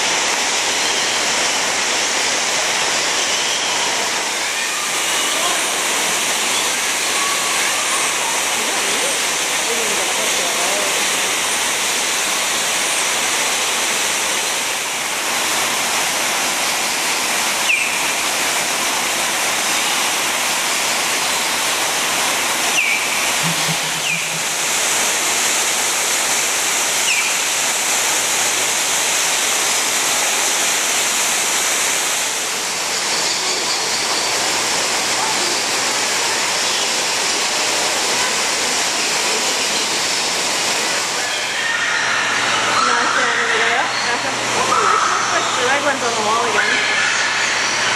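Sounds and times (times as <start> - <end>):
rushing falling water: 0.0 - 47.9
high bird chirps: 17.7 - 18.0, 22.7 - 24.4.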